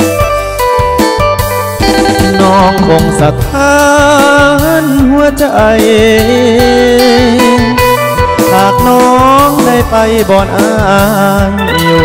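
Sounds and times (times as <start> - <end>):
instrumental pop music: 0.0 - 12.0.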